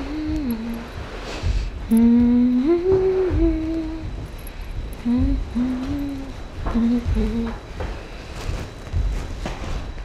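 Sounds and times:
person humming a slow tune: 0.0s - 8.6s.

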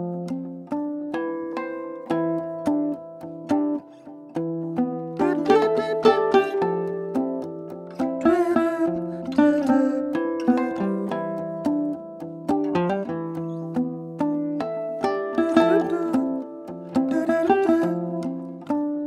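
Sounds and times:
domra plucked notes: 0.0s - 19.0s
sustained layered looped notes: 0.0s - 19.0s.

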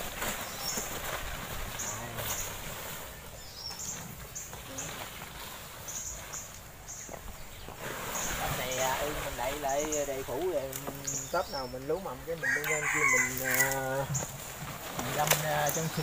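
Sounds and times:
plastic tarp rustling: 0.0s - 6.6s, 12.4s - 16.0s.

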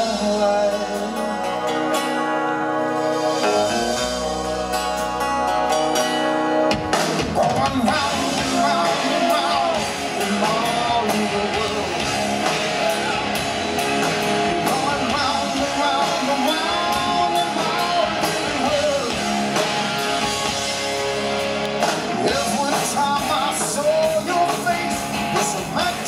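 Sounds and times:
male lead vocal: 0.0s - 5.6s, 7.2s - 20.5s, 22.1s - 26.0s
hard rock band playing live: 0.0s - 26.0s.

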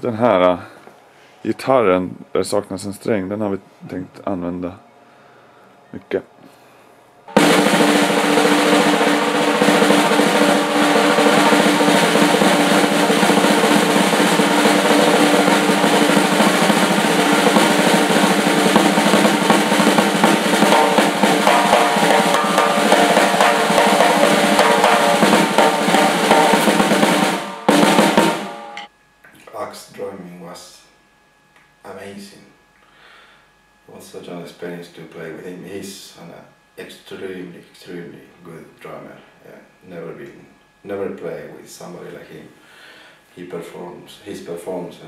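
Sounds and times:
drum kit played fast: 7.3s - 28.9s.

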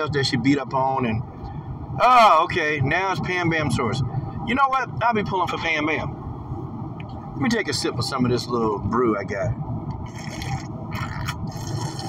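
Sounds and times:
steady low rumble: 0.0s - 12.0s
person sipping a drink: 10.1s - 12.0s.

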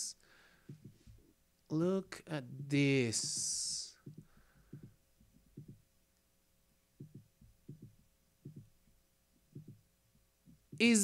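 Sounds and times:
faint steady hum: 0.0s - 11.0s
faint low thumps: 3.2s - 5.8s, 7.0s - 8.8s, 9.5s - 10.9s.

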